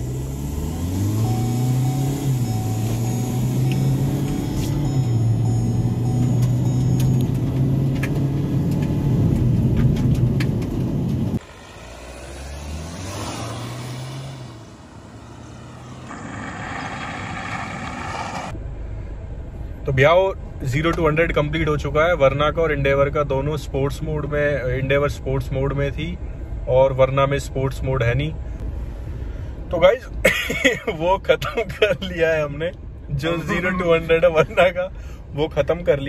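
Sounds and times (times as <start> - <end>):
car engine accelerating: 0.0 - 18.6.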